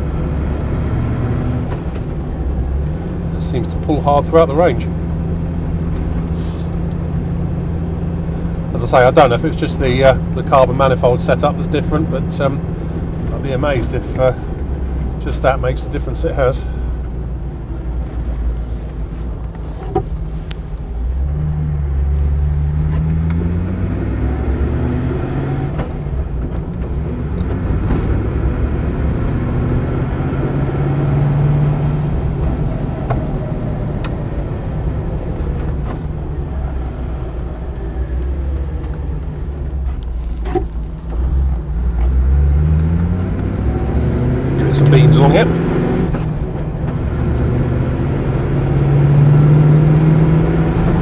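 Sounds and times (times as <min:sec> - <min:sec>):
car engine accelerating: 0:00.0 - 0:19.4, 0:20.2 - 0:51.0.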